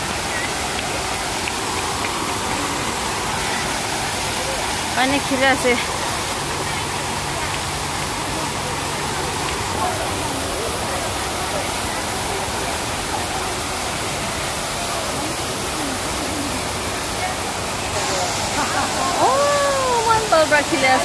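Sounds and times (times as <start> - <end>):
voices chattering faintly: 0.0 - 21.0
water falling into pool: 0.0 - 21.0.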